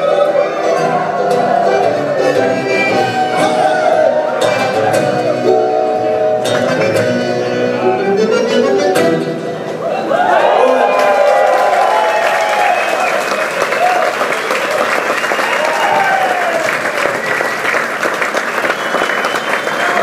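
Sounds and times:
audience applauding and cheering: 0.0 - 5.4, 9.8 - 20.0
people shouting: 2.9 - 5.4.

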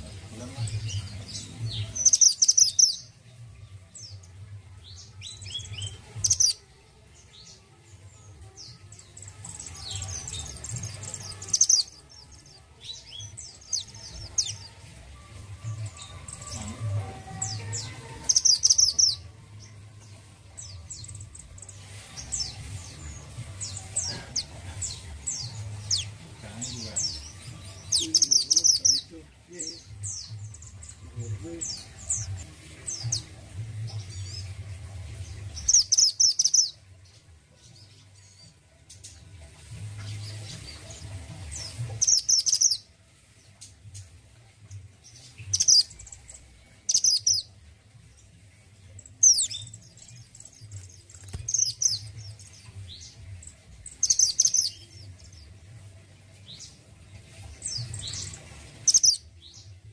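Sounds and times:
bird chirping and whistling: 2.0 - 3.0, 18.3 - 19.2, 46.9 - 47.4.

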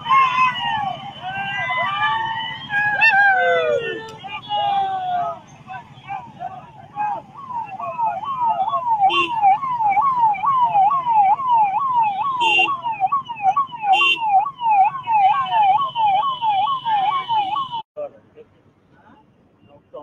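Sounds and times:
police siren yelp: 0.0 - 17.8
short siren blasts: 0.0 - 17.8.

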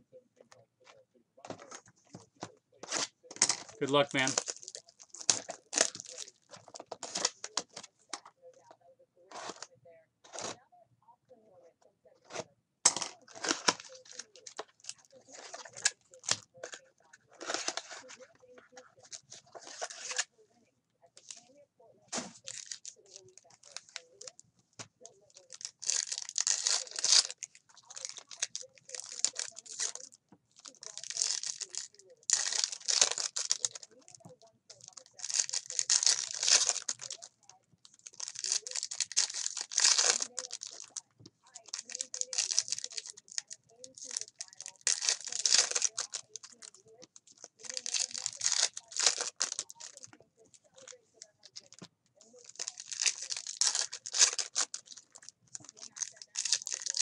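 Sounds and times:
foil wrapper tearing and crinkling: 2.8 - 7.9, 12.3 - 20.3, 22.2 - 24.3, 25.1 - 50.2, 50.8 - 57.0.

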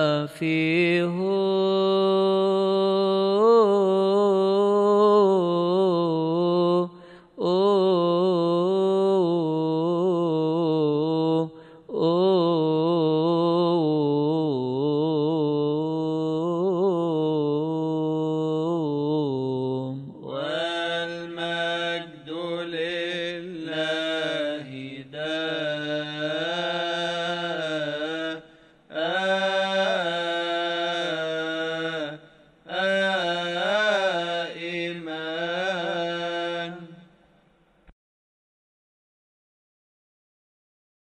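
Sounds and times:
man singing a chant: 0.0 - 37.1.

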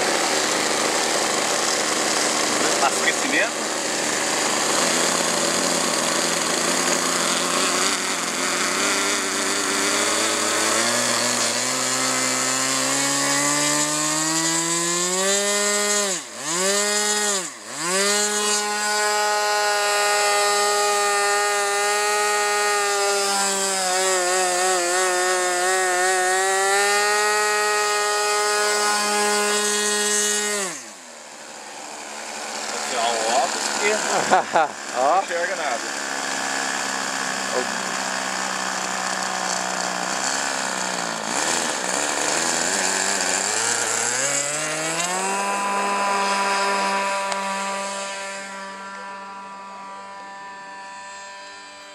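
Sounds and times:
model airplane engine revving: 0.0 - 51.9.

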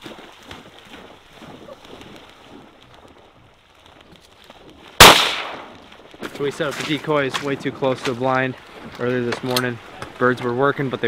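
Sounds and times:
faint water splashing: 0.0 - 11.0.

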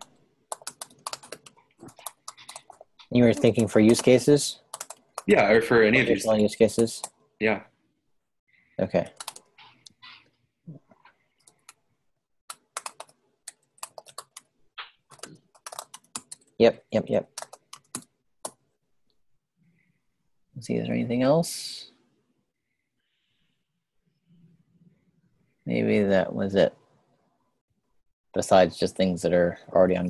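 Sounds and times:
computer keyboard typing: 0.0 - 5.3, 9.0 - 10.0, 11.4 - 11.8, 12.5 - 16.6, 17.2 - 18.6.

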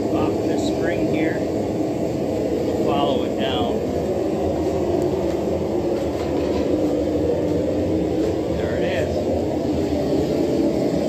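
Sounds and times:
shop machinery rumble: 0.0 - 11.0.

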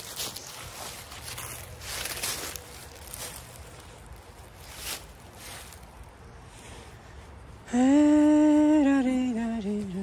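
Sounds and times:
footsteps on dry leaves and gravel: 0.0 - 7.6.

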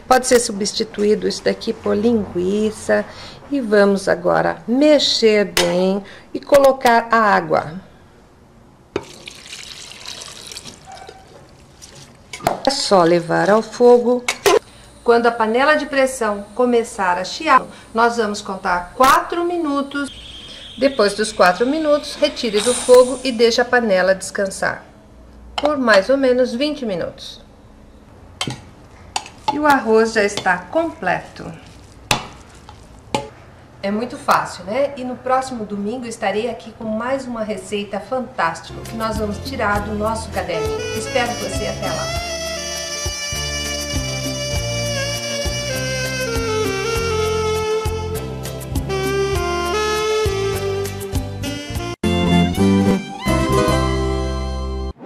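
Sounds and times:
water pouring trickle: 9.0 - 12.3.

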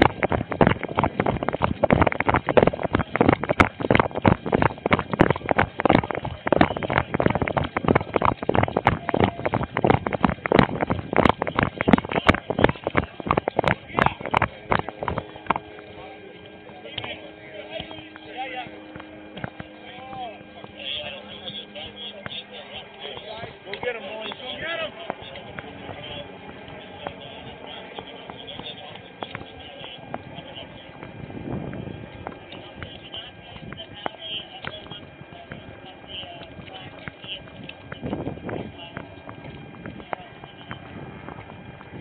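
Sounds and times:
gear knocking against camera: 0.0 - 15.9
indistinct distant voices: 0.0 - 42.0
rapid footsteps: 0.0 - 42.0
steady hum: 0.0 - 42.0
walking footsteps: 0.0 - 42.0.

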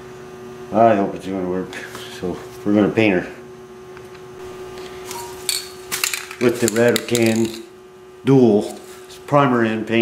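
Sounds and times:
steady low hum: 0.0 - 10.0
metal part clicks and clatters: 4.8 - 7.7.

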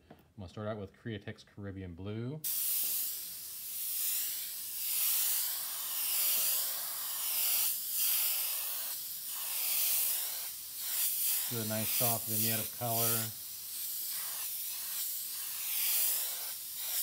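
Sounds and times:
airbrush spraying hiss: 2.4 - 17.0.

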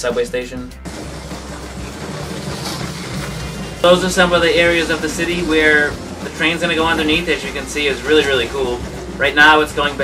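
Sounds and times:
toy train motor whirring: 0.9 - 10.0.

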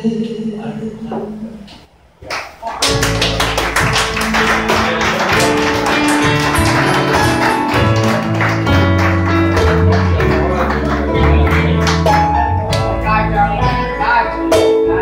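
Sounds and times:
live band playing: 2.9 - 15.0.

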